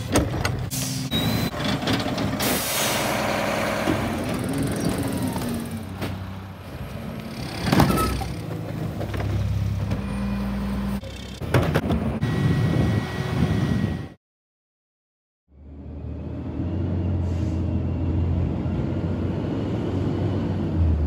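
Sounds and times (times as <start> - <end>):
diesel engines running: 0.0 - 14.2, 15.6 - 21.0.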